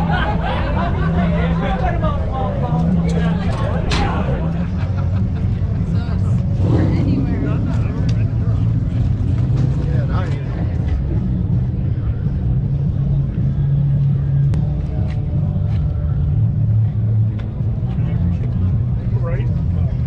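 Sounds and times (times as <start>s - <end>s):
people talking: 0.0s - 13.7s, 17.0s - 20.0s
vehicle engine idling: 0.0s - 20.0s.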